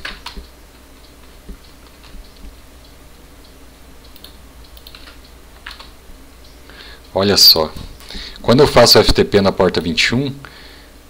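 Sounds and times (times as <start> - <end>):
computer keyboard keystrokes: 0.0 - 0.5, 4.0 - 6.0
low steady hum: 0.0 - 11.0.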